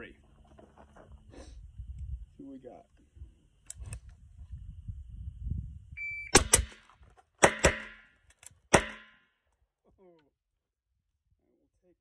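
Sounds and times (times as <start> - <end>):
shot timer beep: 6.0 - 6.5
pistol shots: 6.3 - 6.8, 7.4 - 8.1, 8.7 - 9.2
suppressed rifle shots: 6.3 - 6.8.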